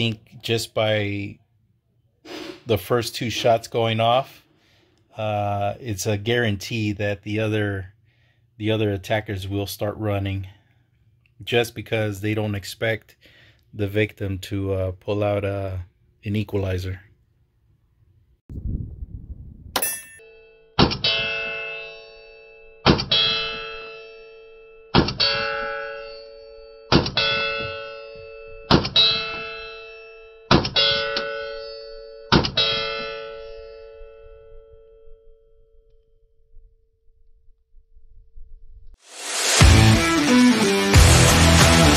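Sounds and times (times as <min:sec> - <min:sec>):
metallic ring: 0:19.8 - 0:35.9.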